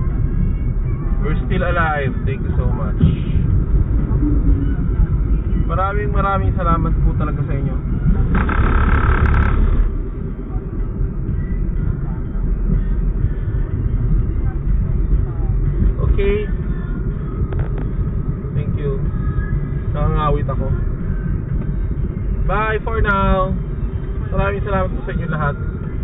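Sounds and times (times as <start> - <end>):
car engine and tyre rumble: 0.0 - 26.0
rush of noise: 0.0 - 26.0.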